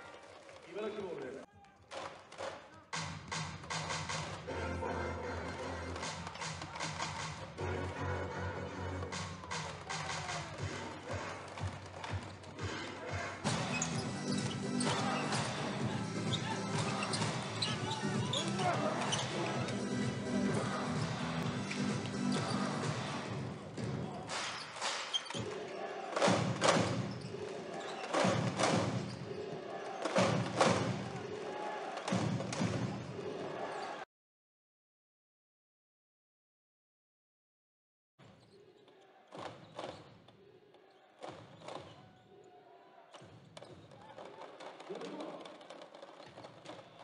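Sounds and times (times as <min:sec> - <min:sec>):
music over arena speakers: 0:03.0 - 0:25.1
ball bouncing on court: 0:10.6 - 0:12.8, 0:43.1 - 0:44.4
voices: 0:14.5 - 0:22.9.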